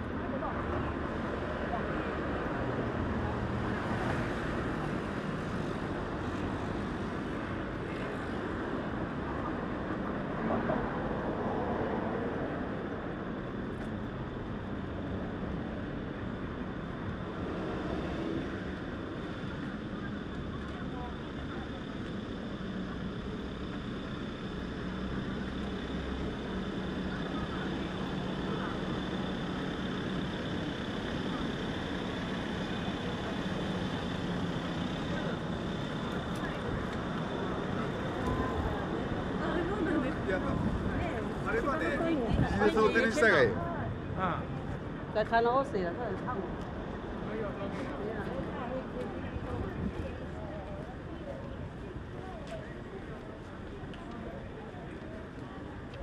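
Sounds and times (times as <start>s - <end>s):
passers-by talking: 0.0s - 13.6s, 14.8s - 56.0s
road traffic hum: 0.0s - 56.0s.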